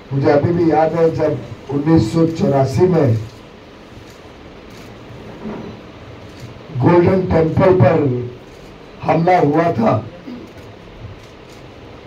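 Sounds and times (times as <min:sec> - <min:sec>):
room hiss: 0:00.0 - 0:12.0
man speaking: 0:00.1 - 0:03.3, 0:06.7 - 0:08.4, 0:09.0 - 0:10.5.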